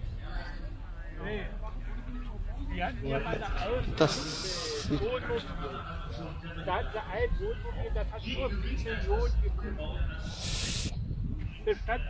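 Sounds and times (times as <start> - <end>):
nearby voices: 3.4 - 8.1
short hiss: 4.1 - 4.9, 10.3 - 10.9
wind rumble on microphone: 8.9 - 12.0.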